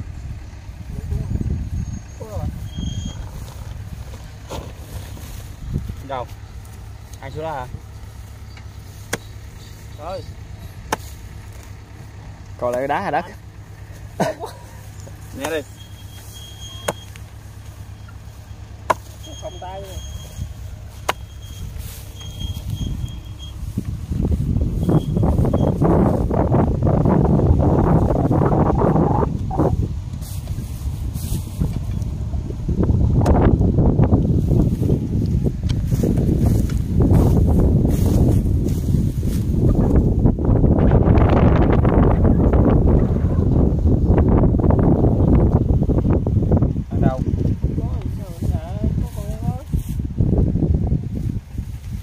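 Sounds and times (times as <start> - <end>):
wind buffeting microphone: 0.0 - 14.2, 14.8 - 52.0.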